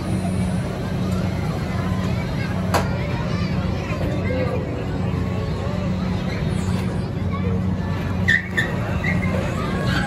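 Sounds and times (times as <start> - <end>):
ride machinery droning: 0.0 - 10.0.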